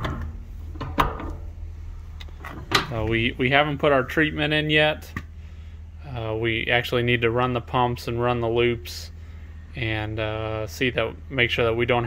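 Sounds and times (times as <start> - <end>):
door handling noise: 0.0 - 1.5, 2.2 - 3.1.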